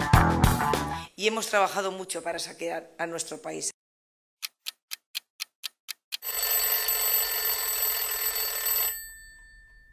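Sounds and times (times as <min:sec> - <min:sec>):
clock ticking: 0:04.4 - 0:06.4
alarm clock bell ringing: 0:06.2 - 0:09.9.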